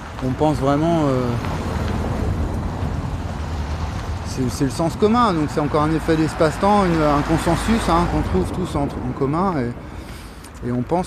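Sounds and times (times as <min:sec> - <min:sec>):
steady low rumble: 0:00.1 - 0:10.9.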